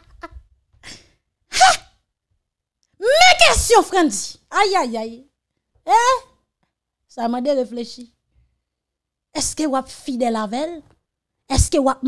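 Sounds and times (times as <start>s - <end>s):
woman laughing: 0.0s - 0.4s.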